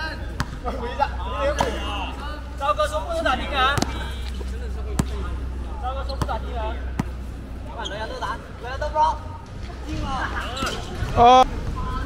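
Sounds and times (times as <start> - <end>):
players' voices: 0.0 - 12.0
basketball bouncing on hard court: 5.0 - 5.2.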